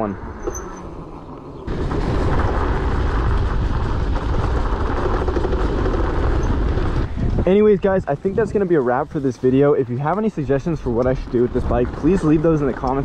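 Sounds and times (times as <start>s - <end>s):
motorcycle rolling noise: 0.0s - 13.0s
wind noise on microphone: 1.7s - 9.1s.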